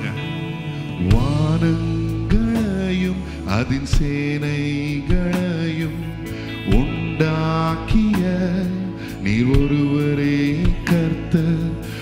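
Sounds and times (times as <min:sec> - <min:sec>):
electric guitar: 0:00.0 - 0:12.0
man singing into a microphone: 0:00.0 - 0:12.0
sustained low accompaniment: 0:00.0 - 0:12.0.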